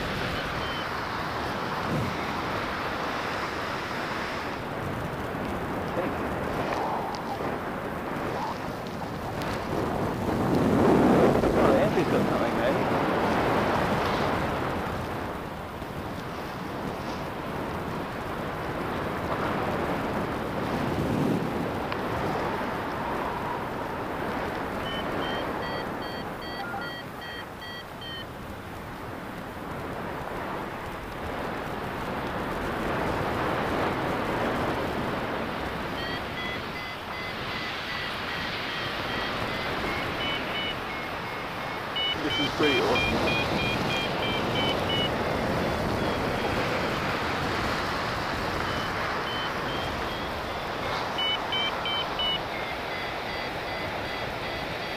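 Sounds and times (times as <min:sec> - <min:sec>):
wind rushing over microphone: 0:00.0 - 0:54.9
variometer short high beeps: 0:00.3 - 0:01.0, 0:24.8 - 0:28.3, 0:35.9 - 0:47.0, 0:48.6 - 0:54.9.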